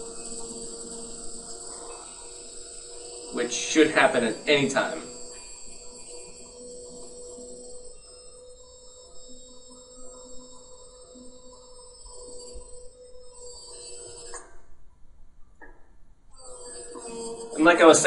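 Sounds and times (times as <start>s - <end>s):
dry ice fizzling hum: 0.0s - 14.4s, 16.3s - 18.0s.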